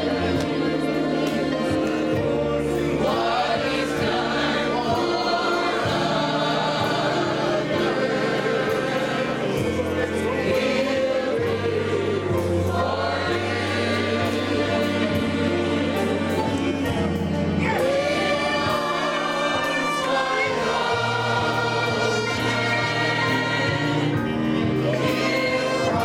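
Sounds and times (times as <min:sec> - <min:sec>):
congregation singing a hymn: 0:00.0 - 0:26.0
instrumental accompaniment: 0:00.0 - 0:26.0.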